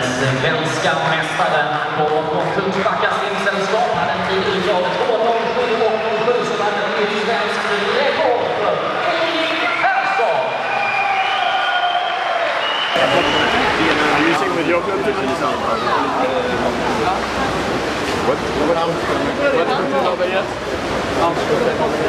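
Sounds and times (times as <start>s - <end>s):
applause: 1.9s - 3.5s, 10.7s - 14.4s.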